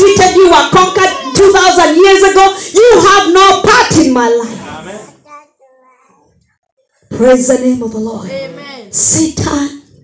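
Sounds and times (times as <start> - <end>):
woman speaking into a microphone: 0.0 - 4.6, 7.0 - 10.0.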